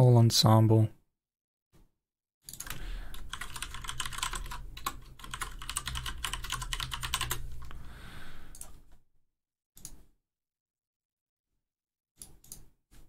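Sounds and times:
computer keys clicking: 0:02.5 - 0:07.8.

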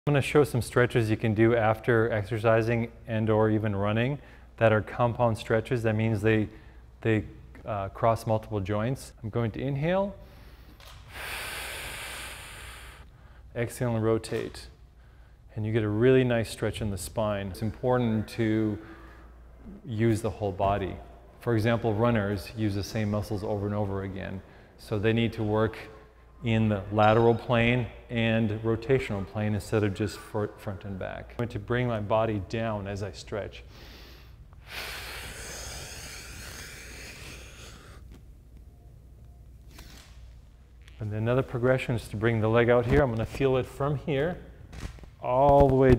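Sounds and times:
man breathing in deeply: 0:10.2 - 0:13.5, 0:33.7 - 0:38.1.

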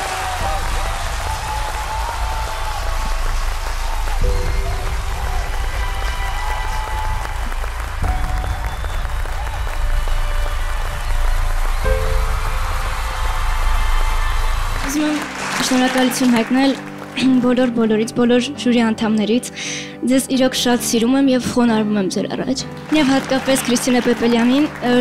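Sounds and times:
steady low bass: 0:00.0 - 0:14.8
studio audience applauding: 0:00.0 - 0:18.1, 0:22.6 - 0:25.0
sustained musical chords: 0:00.2 - 0:19.0.

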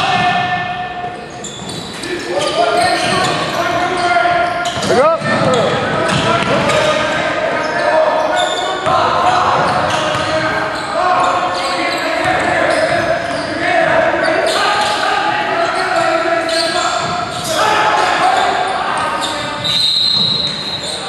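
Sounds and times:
echoing voices: 0:00.0 - 0:21.0
sneakers squeaking: 0:00.0 - 0:21.0.

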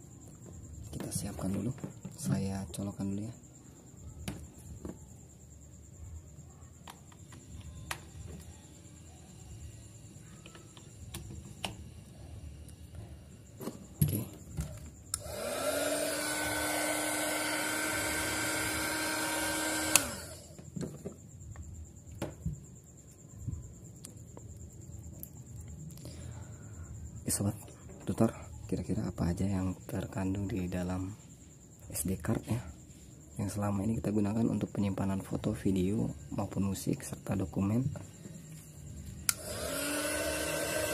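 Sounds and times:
hot air gun fan whine: 0:07.3 - 0:21.2, 0:37.3 - 0:40.9
sharp clicks: 0:19.7 - 0:20.4.

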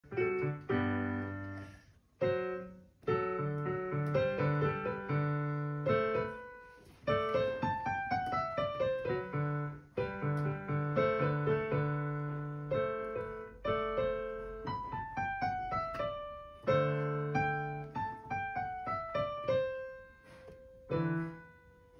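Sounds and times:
digital piano melody: 0:00.0 - 0:21.9.

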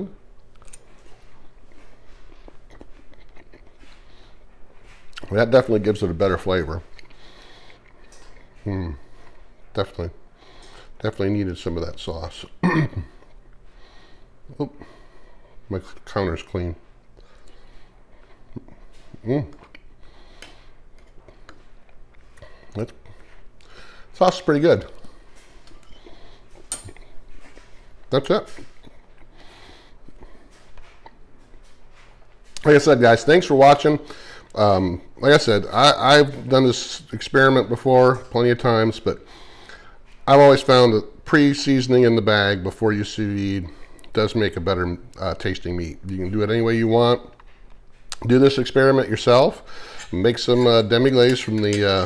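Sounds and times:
low steady hum: 0:00.0 - 0:52.0
man chewing: 0:00.3 - 0:05.3, 0:06.8 - 0:09.6, 0:17.0 - 0:24.1, 0:24.9 - 0:32.7.

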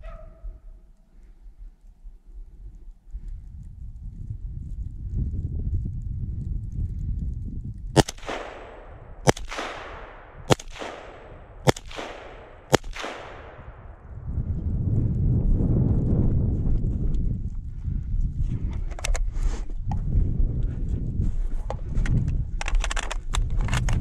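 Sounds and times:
low rumble of movement: 0:00.1 - 0:24.0
rifle shots echoing: 0:08.0 - 0:14.1.

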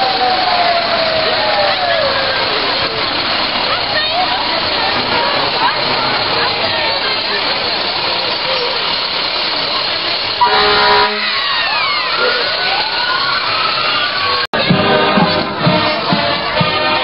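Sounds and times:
fire engine air horn blast: 0:10.4 - 0:11.6
siren wailing: 0:10.4 - 0:14.5.

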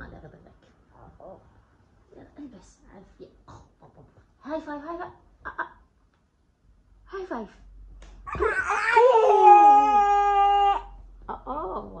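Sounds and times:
child squealing playfully: 0:08.3 - 0:10.9.

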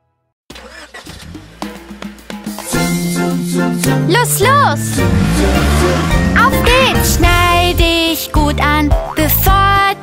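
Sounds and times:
children's song music: 0:01.6 - 0:10.0
car engine rumbling: 0:04.5 - 0:08.6.

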